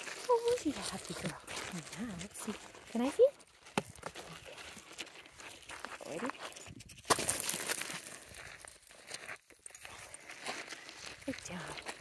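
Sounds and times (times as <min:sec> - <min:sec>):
footsteps crunching on gravel: 0:00.0 - 0:12.0.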